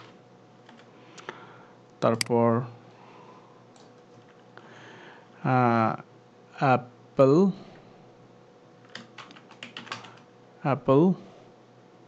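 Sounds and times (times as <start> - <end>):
computer keyboard clicks: 0.6 - 0.9, 8.8 - 10.3.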